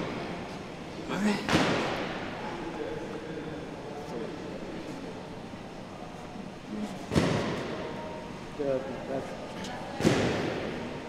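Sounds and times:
murmur of voices: 0.0 - 11.0
loud thud: 7.1 - 7.6.

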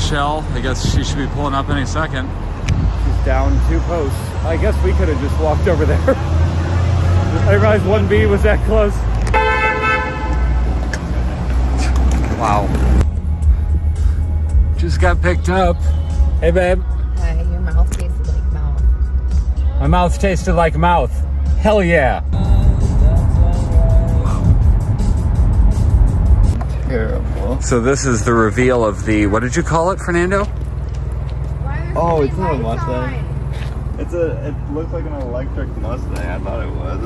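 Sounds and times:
low rumble of traffic: 0.0 - 37.0
car horn: 9.3 - 10.8
music playing: 12.9 - 26.6
car road rumble from inside cabin: 22.1 - 37.0.

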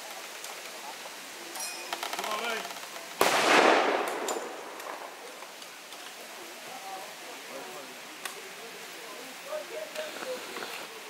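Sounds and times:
loud blank gunshot: 3.2 - 5.2
rattle of small gunshots: 3.2 - 5.4.

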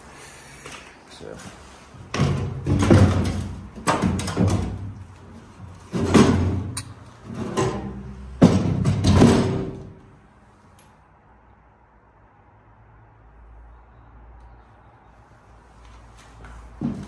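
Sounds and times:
metal door clanking and scraping: 2.0 - 10.0.

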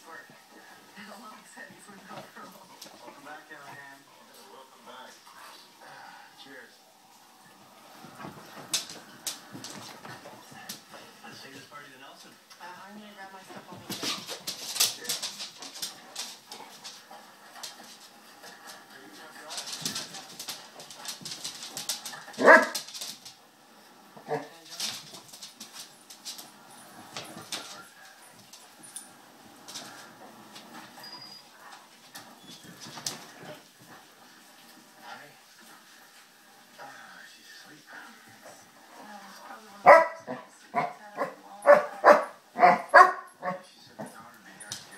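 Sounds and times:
dogs scuffling on wood floor: 0.0 - 5.7, 7.2 - 37.0, 37.6 - 44.9
dog barking: 22.4 - 22.8, 39.8 - 43.6.

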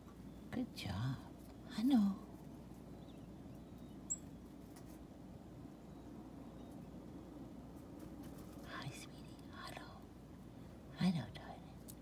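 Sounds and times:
bird chirp: 0.0 - 4.6, 5.5 - 7.4.

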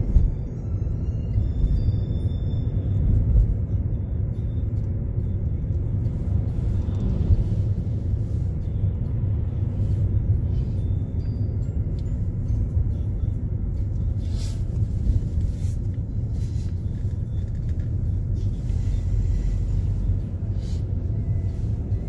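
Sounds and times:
faint background music: 0.0 - 22.0
vehicle engine and road noise: 0.0 - 22.0.

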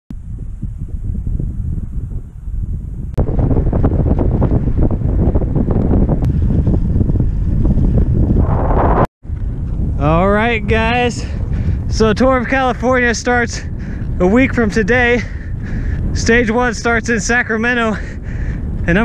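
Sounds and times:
wind buffeting microphone: 0.1 - 19.0.

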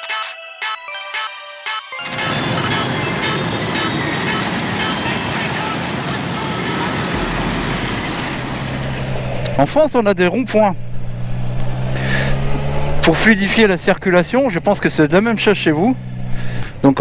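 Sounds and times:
light music with chiming notes: 0.0 - 5.0
motor scooters passing: 2.0 - 17.0
low engine hum: 2.1 - 17.0.

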